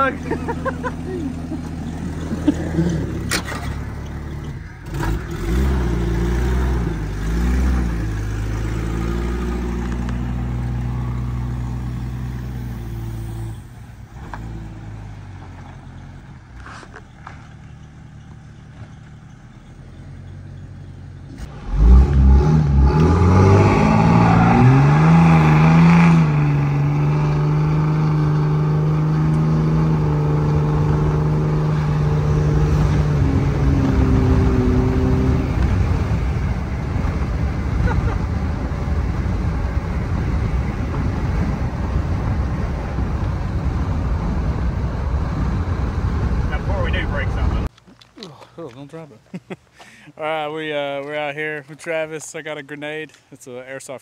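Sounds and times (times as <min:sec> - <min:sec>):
car engine revving: 0:00.0 - 0:47.7.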